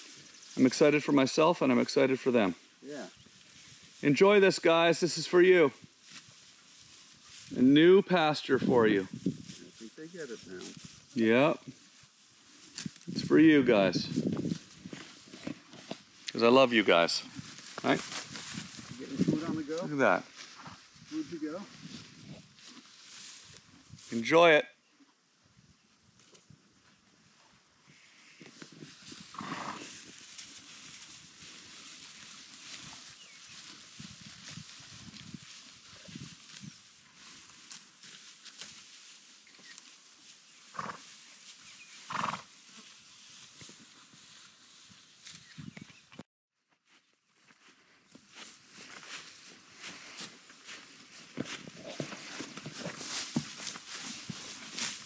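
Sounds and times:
horses tearing grass: 3.3 - 24.2, 28.2 - 46.0, 48.1 - 55.0
short horse sounds: 27.9 - 30.1, 40.7 - 41.1, 41.7 - 42.9, 51.5 - 54.2.

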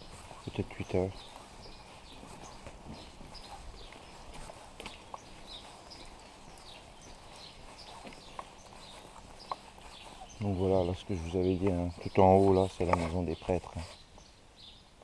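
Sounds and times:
footsteps on wet pavement: 0.0 - 14.8
small birds chirping: 0.0 - 15.0.

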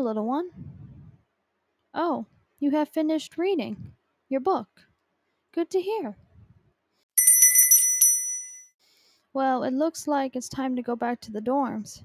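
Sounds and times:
small bell rung rapidly: 7.2 - 8.7.

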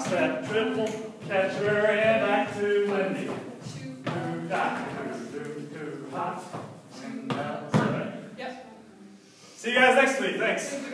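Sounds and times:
people speaking: 8.4 - 10.9.

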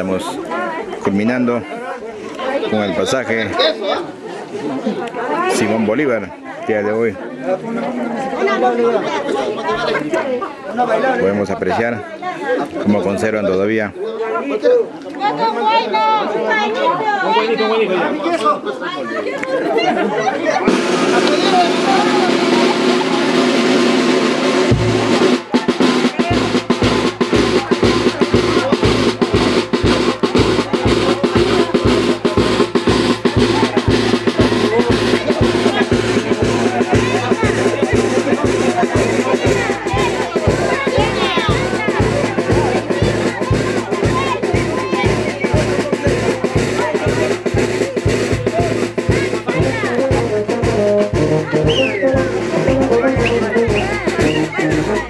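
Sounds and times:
crowd voices: 0.0 - 55.0
brass band playing dance tune: 20.5 - 55.0
steady drum beat: 20.6 - 55.0.

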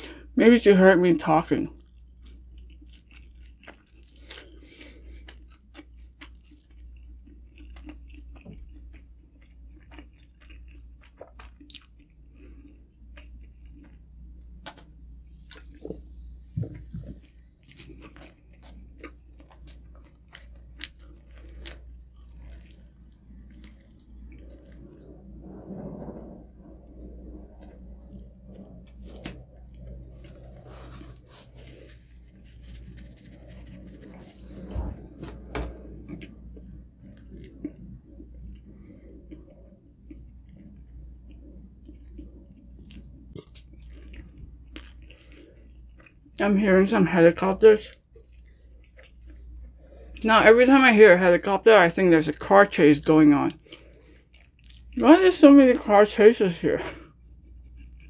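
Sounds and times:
chewing pizza: 1.6 - 56.2, 56.8 - 58.0
crust crunching: 28.0 - 35.5.

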